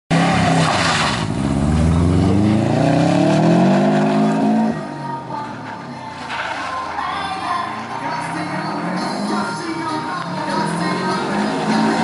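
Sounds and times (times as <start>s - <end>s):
rally car engine revving: 0.1s - 12.0s.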